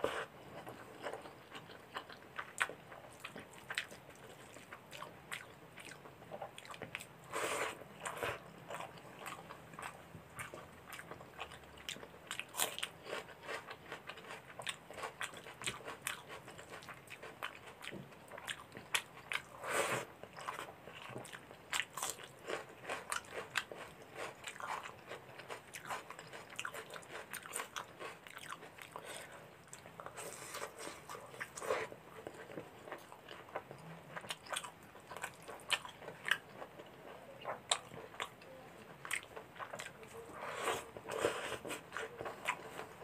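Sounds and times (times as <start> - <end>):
wet chewing and lip-smacking: 0.5 - 7.2, 8.0 - 19.6, 20.2 - 40.2.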